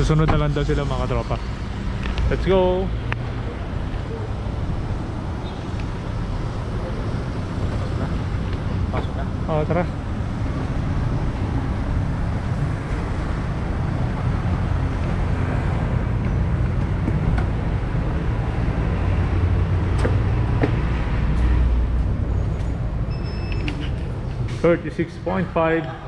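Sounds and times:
low rumbling street noise: 0:00.0 - 0:26.0.

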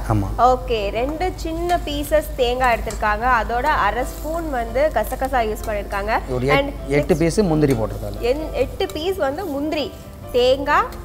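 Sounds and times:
faint food sizzling in a pan: 0:00.0 - 0:11.0
woman talking: 0:00.4 - 0:06.8, 0:08.2 - 0:11.0.

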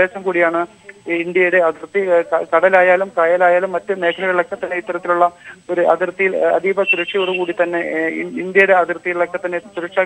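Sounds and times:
man speaking over phone line: 0:01.1 - 0:10.0.

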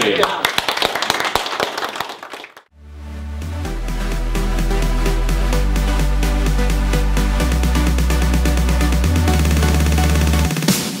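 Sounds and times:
electronic music with deep bass: 0:02.8 - 0:10.9.

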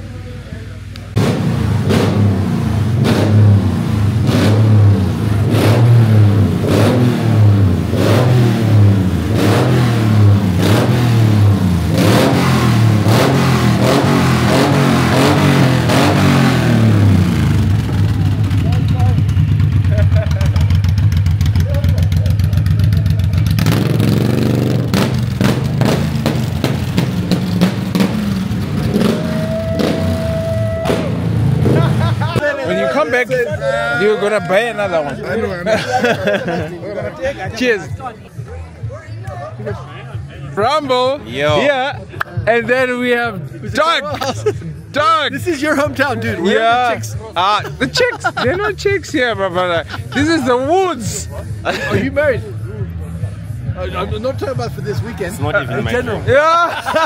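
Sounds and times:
motorcycle engine revving: 0:01.1 - 0:32.4.

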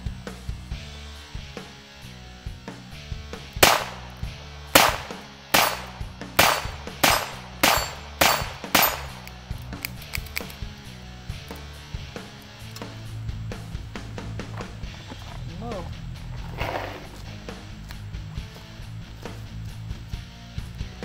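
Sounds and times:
revolver shots: 0:03.6 - 0:09.3.

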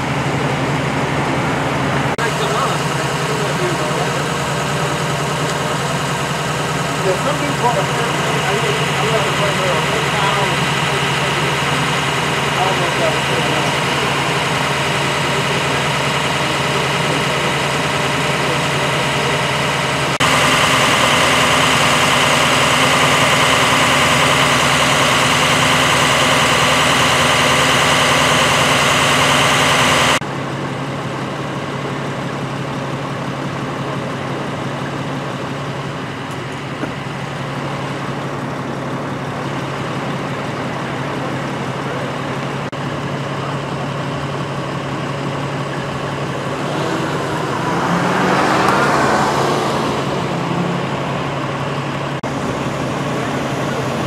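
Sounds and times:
emergency vehicle engines idling: 0:00.0 - 0:54.0.

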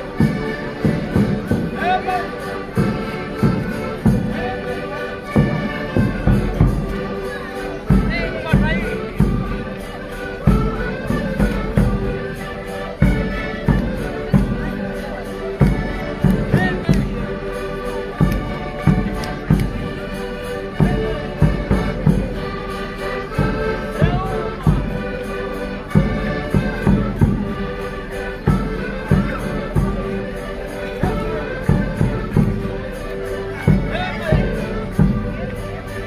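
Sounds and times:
accordion dance music: 0:00.0 - 0:36.0.

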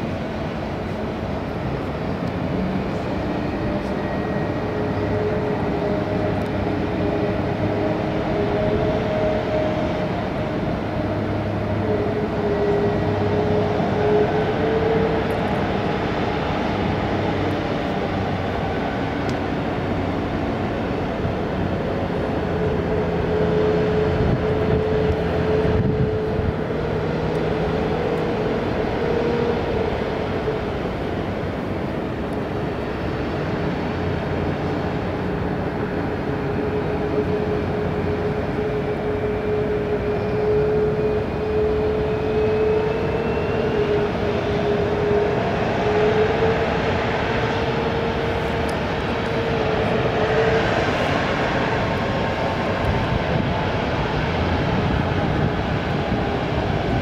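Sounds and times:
jet engines whining: 0:00.0 - 0:57.0.

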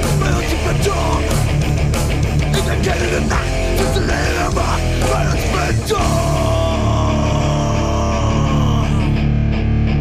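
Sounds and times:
distorted electric guitars and bass: 0:00.0 - 0:10.0.

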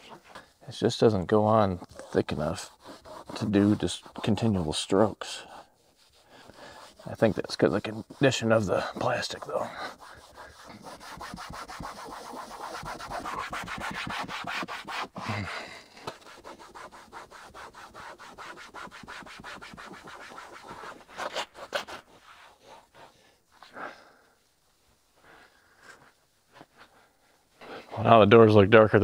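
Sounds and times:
wipe rubbing on plastic panel: 0:01.8 - 0:15.2, 0:16.0 - 0:23.6.

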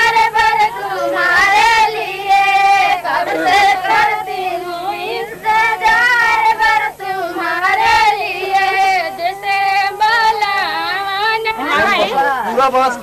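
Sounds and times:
woman singing in high voice: 0:00.0 - 0:12.2
faint steady hum: 0:00.0 - 0:13.0.

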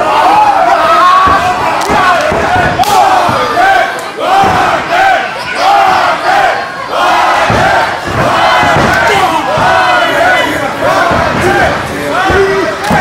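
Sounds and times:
crowd shouting and yelling: 0:00.0 - 0:13.0.

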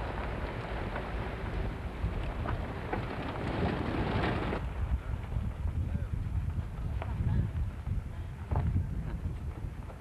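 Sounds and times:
car driving on dirt track: 0:00.0 - 0:10.0
wind buffeting microphone: 0:00.0 - 0:10.0.

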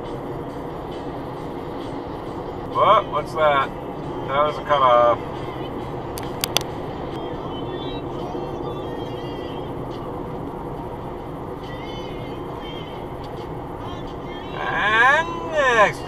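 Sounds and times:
road and engine noise in car: 0:00.0 - 0:16.0
sharp clicks: 0:06.2 - 0:06.7.

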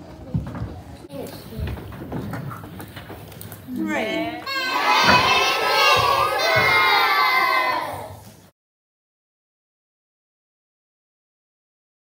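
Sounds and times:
murmur of voices: 0:00.0 - 0:08.2
children shouting and cheering: 0:04.4 - 0:08.3.

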